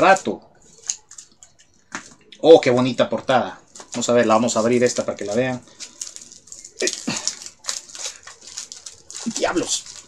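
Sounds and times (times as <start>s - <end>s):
plastic shrink-wrap tearing: 0.7s - 1.5s, 3.8s - 10.0s.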